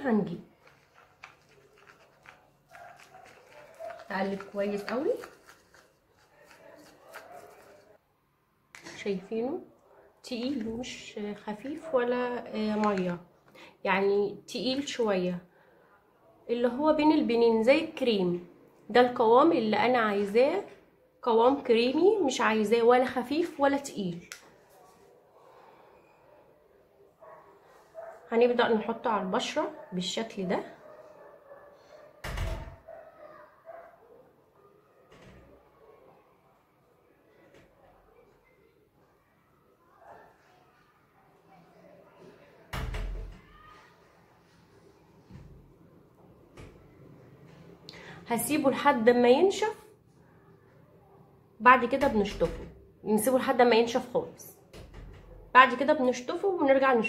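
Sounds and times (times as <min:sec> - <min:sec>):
faint background noise: 0:00.0 - 0:57.0
spoon scraping a ceramic bowl: 0:00.7 - 0:07.9.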